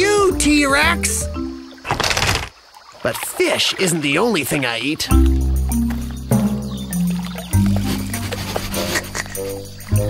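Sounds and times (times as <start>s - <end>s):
cartoon background music: 0.0s - 1.7s, 5.1s - 10.0s.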